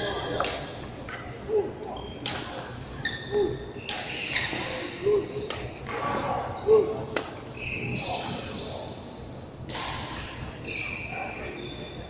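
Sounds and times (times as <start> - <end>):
high squeak: 7.5 - 12.0.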